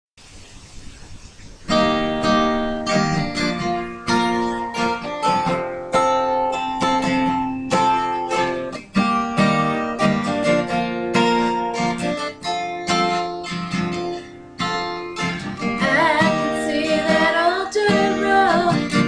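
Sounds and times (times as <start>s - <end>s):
acoustic guitar chords: 0.7s - 19.0s.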